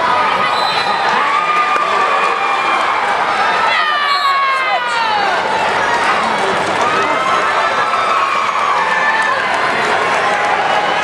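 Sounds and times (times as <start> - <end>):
crowd cheering and shouting: 0.0 - 11.0.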